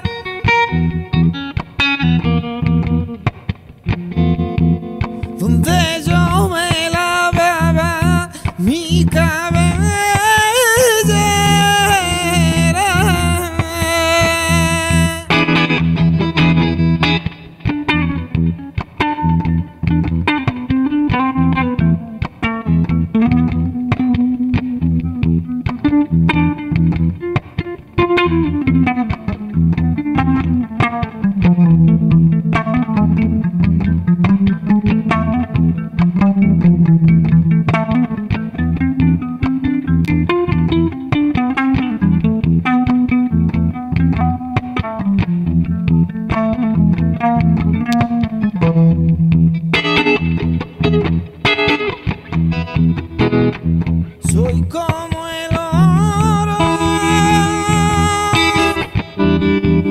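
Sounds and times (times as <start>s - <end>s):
person singing: 0.0s - 0.5s, 5.2s - 15.7s, 54.2s - 59.9s
electric guitar picking notes: 0.0s - 59.9s.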